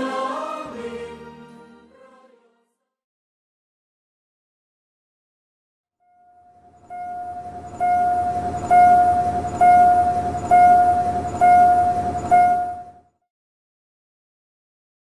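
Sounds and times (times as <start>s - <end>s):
bell ringing: 6.2s - 13.0s
low rumble: 6.8s - 13.0s.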